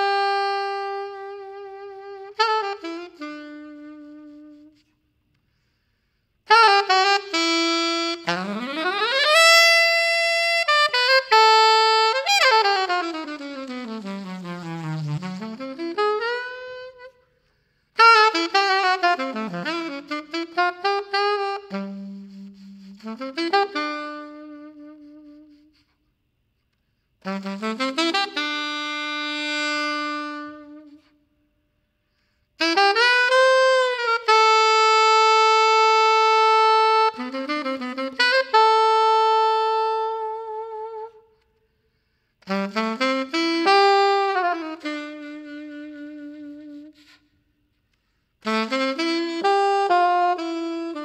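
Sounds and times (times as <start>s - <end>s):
alto saxophone playing jazz: 0.0s - 26.3s, 26.9s - 31.4s, 32.0s - 51.0s.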